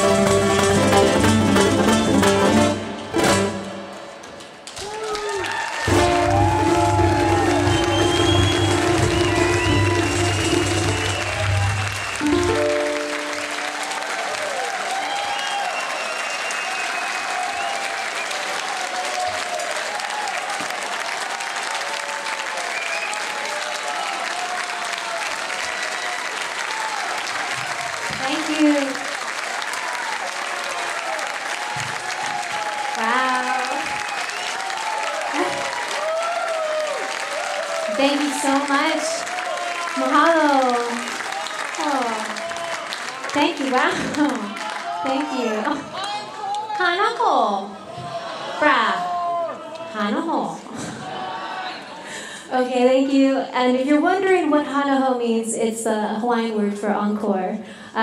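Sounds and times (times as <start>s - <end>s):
ukulele and cajon playing: 0.0s - 4.4s, 5.9s - 13.8s
audience cheering: 0.0s - 52.2s
audience applauding: 0.0s - 52.4s.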